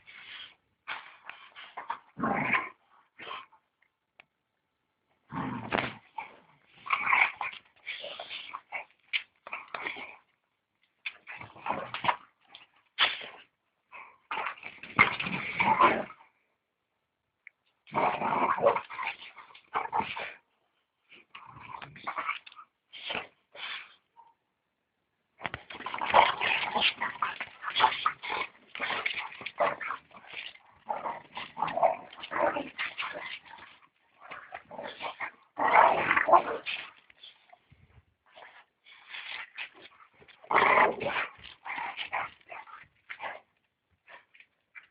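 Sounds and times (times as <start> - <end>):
dogs play-fighting: 0.0 - 3.8, 5.3 - 16.3, 21.0 - 24.2, 25.4 - 44.9.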